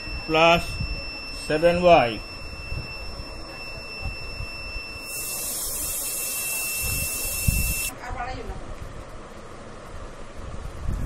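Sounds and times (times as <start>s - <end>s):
steady high hiss: 0.0s - 7.9s
faint high-pitched whine: 0.0s - 8.0s.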